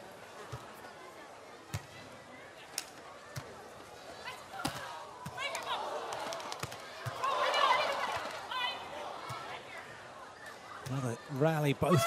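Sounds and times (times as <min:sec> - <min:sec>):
crowd noise: 0:00.0 - 0:12.0
hands slapping volleyball: 0:04.6 - 0:07.3
people shouting: 0:07.0 - 0:09.4.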